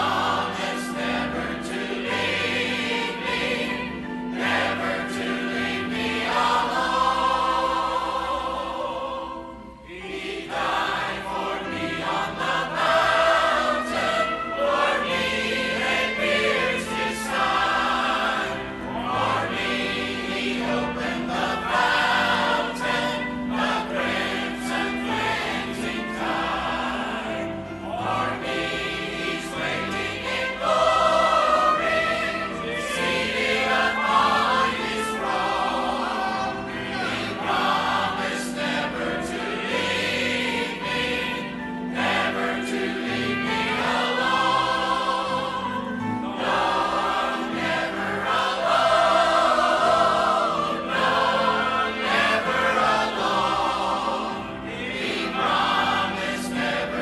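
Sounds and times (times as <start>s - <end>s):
choir singing a hymn: 0.0s - 57.0s
instrumental accompaniment: 0.0s - 57.0s.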